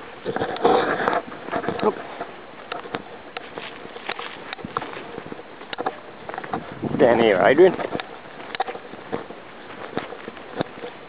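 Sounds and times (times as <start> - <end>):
faint outdoor hiss: 0.0 - 11.0
footsteps on dirt track: 0.0 - 11.0.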